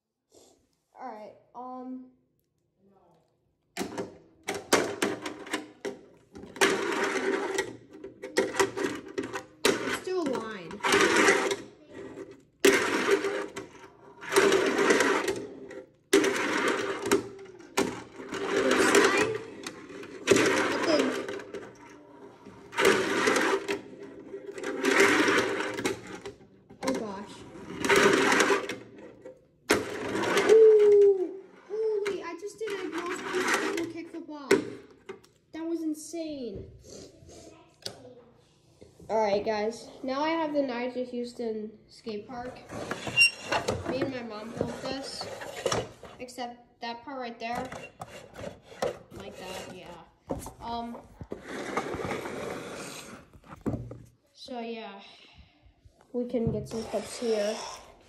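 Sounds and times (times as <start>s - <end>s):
fingerboard wheels rolling on ramp: 6.5s - 31.7s, 32.8s - 34.0s, 51.2s - 54.0s.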